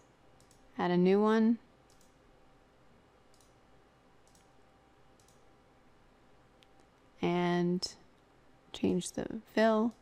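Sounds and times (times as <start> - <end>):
faint computer mouse clicks: 0.4 - 0.7, 1.9 - 2.2, 3.3 - 3.6, 4.2 - 4.6, 5.2 - 5.5.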